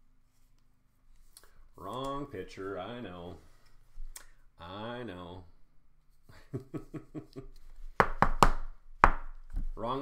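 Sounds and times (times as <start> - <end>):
man laughing: 6.3 - 7.6.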